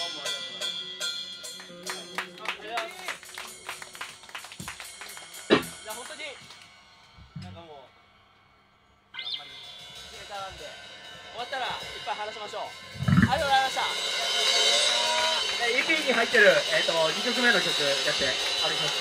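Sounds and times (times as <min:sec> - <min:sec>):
drums and cymbals: 0:00.0 - 0:02.1, 0:03.0 - 0:19.0
distorted guitars: 0:05.5 - 0:05.8, 0:12.8 - 0:13.8.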